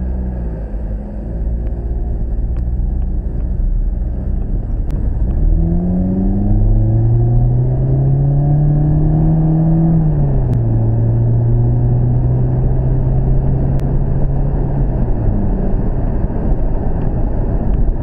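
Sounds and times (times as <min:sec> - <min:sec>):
car engine accelerating: 0:00.0 - 0:18.0
road rumble: 0:00.0 - 0:18.0.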